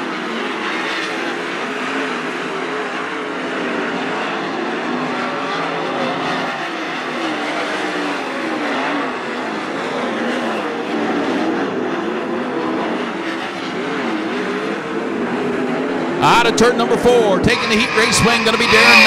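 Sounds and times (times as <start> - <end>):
racing car engines: 0.0 - 19.0.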